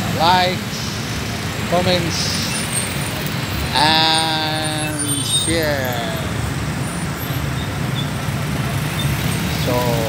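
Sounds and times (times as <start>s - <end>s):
road traffic engines: 0.0s - 10.0s.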